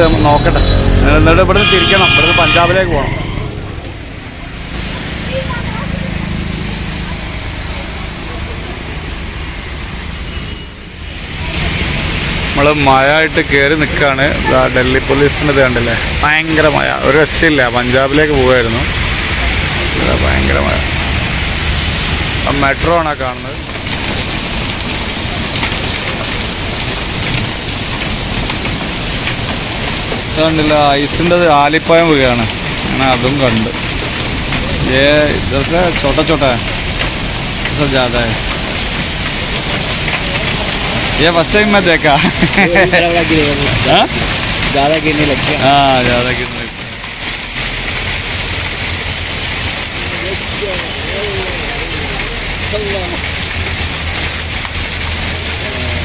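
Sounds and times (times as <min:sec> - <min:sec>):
hiss of tyres and rain: 0:00.0 - 0:56.0
drops splashing into puddles: 0:17.8 - 0:56.0.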